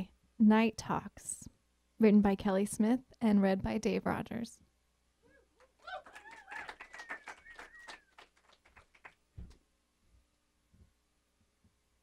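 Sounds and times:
whoops: 5.3s - 8.3s
audience clapping: 5.6s - 9.6s
long falling whistle: 6.7s - 8.1s.

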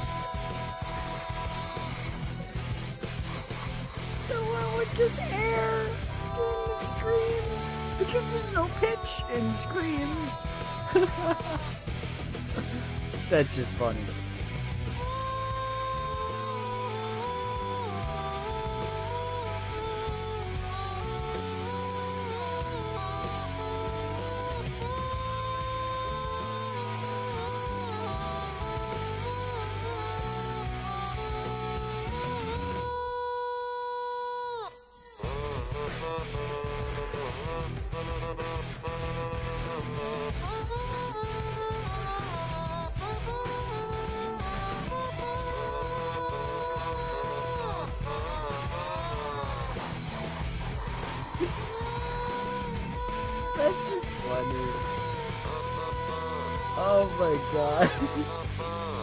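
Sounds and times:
accompanying rock music: 0.0s - 33.1s, 35.0s - 59.0s.

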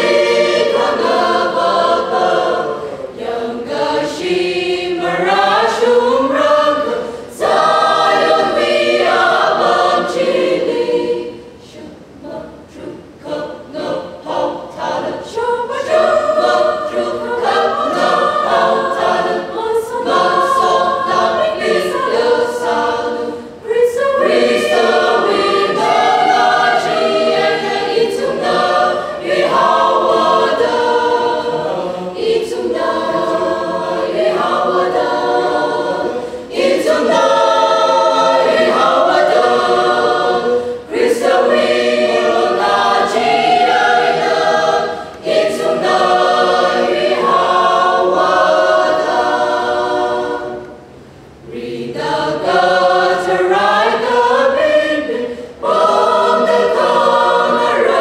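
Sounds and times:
mixed choir singing: 0.0s - 58.0s.

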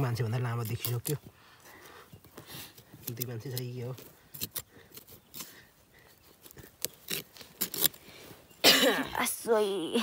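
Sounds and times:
person coughing: 8.6s - 9.3s.

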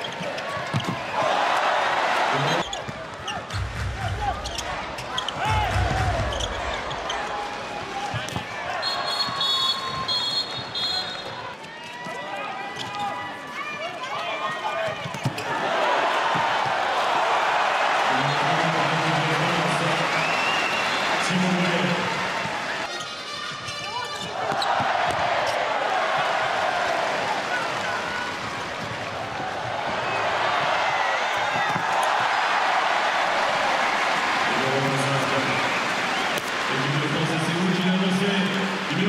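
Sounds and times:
crowd noise: 0.0s - 39.0s
ball bouncing on court: 0.1s - 1.1s
referee whistle blasts: 8.8s - 11.4s.

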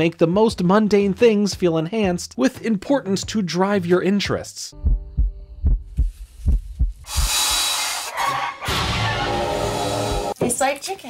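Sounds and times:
low heartbeat-like thumps: 4.8s - 7.4s.

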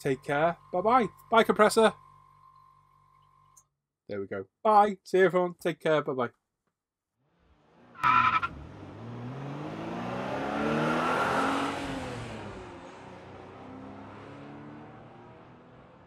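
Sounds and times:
car engine revving: 7.4s - 16.0s
tyre squeal: 8.0s - 8.6s.

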